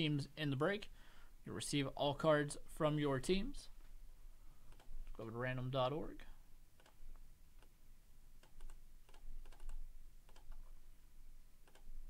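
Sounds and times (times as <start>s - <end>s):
mouse and keyboard clicks: 8.4s - 10.7s.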